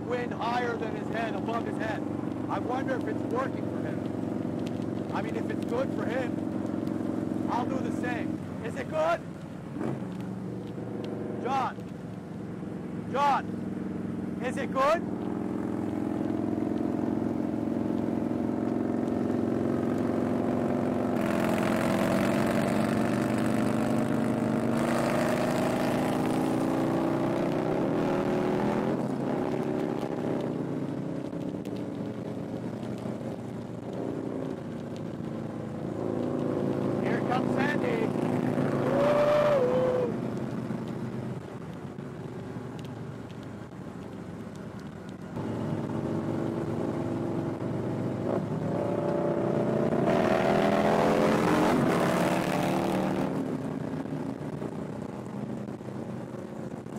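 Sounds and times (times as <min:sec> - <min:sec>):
motorcycle engines cruising: 0:00.0 - 0:56.9.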